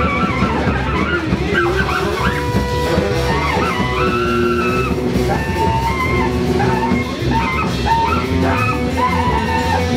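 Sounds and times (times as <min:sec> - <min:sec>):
live band playing: 0:00.0 - 0:09.9
wavering saxophone: 0:00.0 - 0:09.9.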